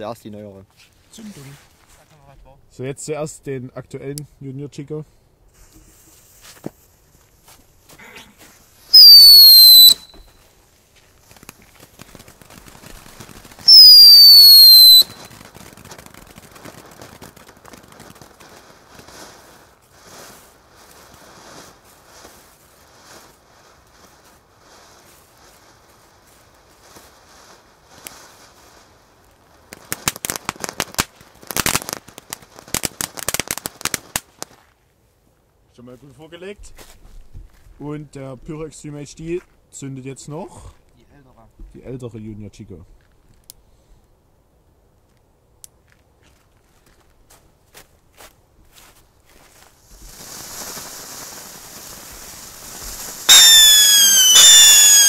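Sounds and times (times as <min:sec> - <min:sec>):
firework whistles: 0:08.8 - 0:10.5, 0:12.6 - 0:16.8, 0:49.8 - 0:55.0
rapid crackling: 0:11.2 - 0:19.4
hissing spray of sparks: 0:11.3 - 0:18.2, 0:49.8 - 0:55.0.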